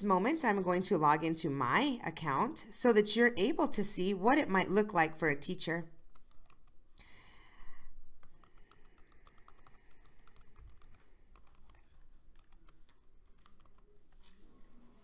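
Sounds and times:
computer keyboard typing: 6.1s - 6.8s, 8.2s - 14.4s.

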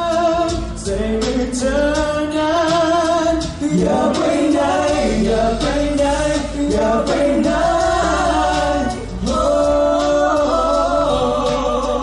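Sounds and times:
men singing ballad in harmony: 0.0s - 12.0s.

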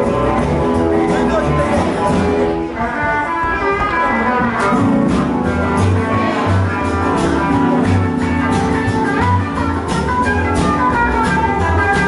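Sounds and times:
band playing music: 0.0s - 12.0s
double bass: 0.0s - 12.0s
guitar: 0.0s - 12.0s.

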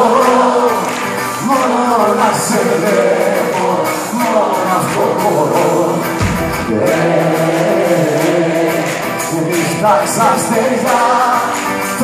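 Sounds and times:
live folk-rock band: 0.0s - 12.0s
man singing: 0.0s - 12.0s.

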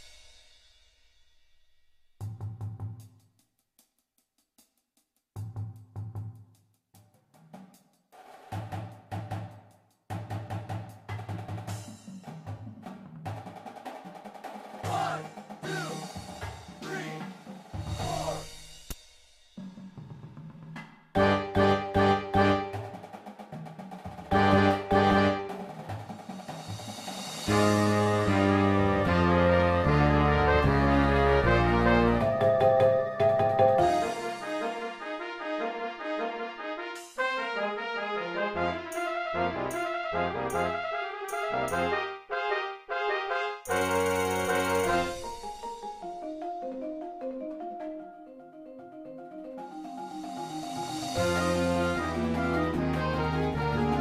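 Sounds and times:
marching band playing: 13.4s - 18.6s, 21.2s - 45.8s, 50.4s - 54.0s
brass sustained chords: 21.2s - 22.7s, 24.3s - 25.6s, 27.5s - 32.4s, 33.8s - 43.9s, 51.1s - 54.0s
brass accented hits: 21.2s - 23.0s, 24.3s - 25.7s, 27.4s - 45.4s, 50.8s - 54.0s.

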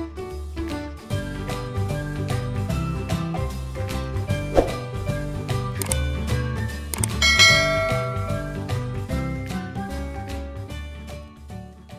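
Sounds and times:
background music: 0.0s - 11.9s
sharp click: 5.8s - 6.0s, 6.9s - 7.2s
bright bell ding: 7.1s - 8.9s.

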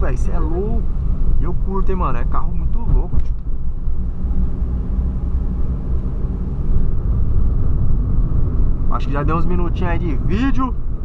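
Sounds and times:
road and engine noise in car: 0.0s - 11.0s.

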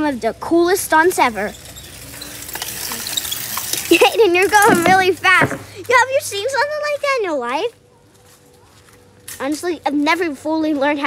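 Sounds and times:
bicycle tyres on gritty asphalt: 0.0s - 11.0s.

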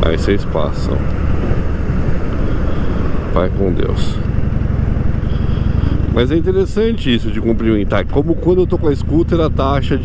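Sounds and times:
rushing noise: 0.0s - 6.5s
motorcycle engine running: 1.1s - 10.0s.

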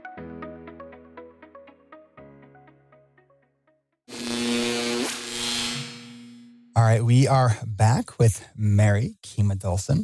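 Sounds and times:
electronic buzz with low hum: 4.1s - 6.8s.

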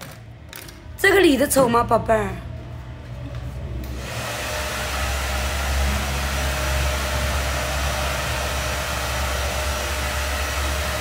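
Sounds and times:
hair dryer running: 3.8s - 11.0s.

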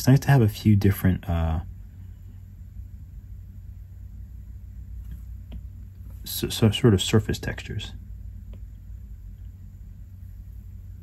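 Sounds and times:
low background hum with hiss: 0.0s - 11.0s.

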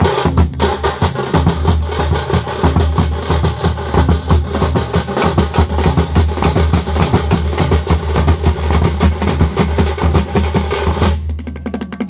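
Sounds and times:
frame drums beating fast: 0.0s - 12.0s.

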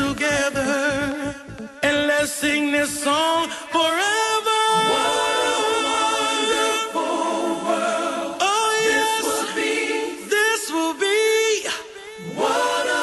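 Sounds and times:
choir-style voices singing: 4.7s - 13.0s.

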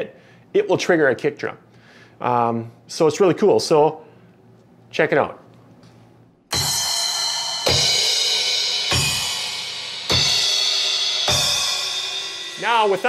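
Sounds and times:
cymbal crashes: 6.5s - 13.0s.

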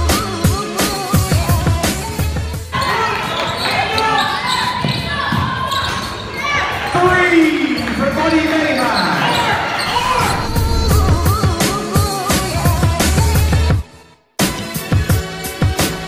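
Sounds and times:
crowd shouting and cheering: 9.3s - 11.5s.

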